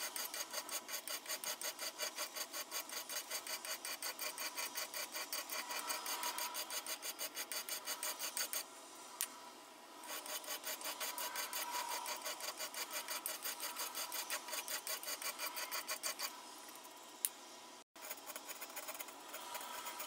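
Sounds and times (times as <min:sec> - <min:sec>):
hand file stroking metal: 0:10.1 - 0:16.3.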